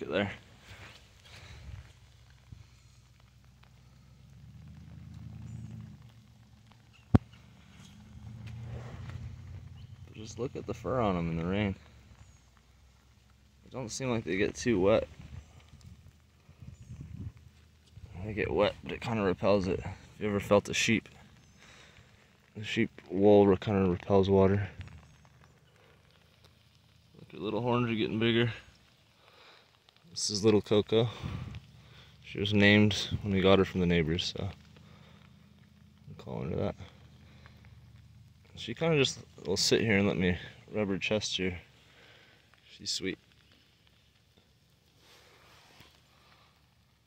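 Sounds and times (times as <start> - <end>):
low rumble: 0.0 - 27.3, 30.8 - 42.5
soft ticks: 24.8 - 27.1.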